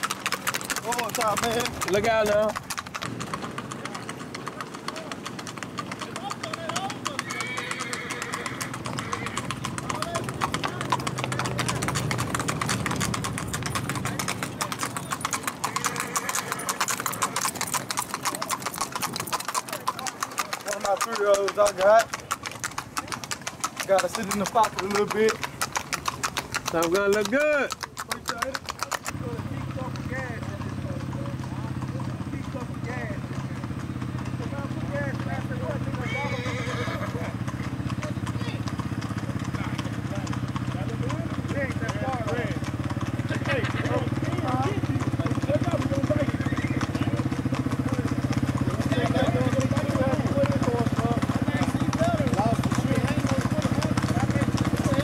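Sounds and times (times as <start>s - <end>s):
horse hooves clip-clopping on road: 0.0s - 55.0s
voices calling out: 0.0s - 55.0s.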